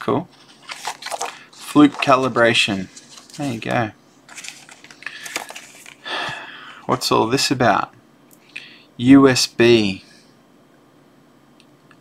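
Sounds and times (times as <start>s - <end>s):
paper leaflets rustling: 0.3s - 6.1s.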